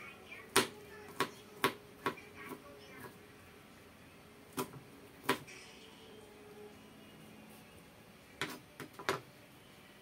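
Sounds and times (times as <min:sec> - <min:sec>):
knife striking plastic cutting board: 0:04.5 - 0:05.5, 0:08.4 - 0:09.2.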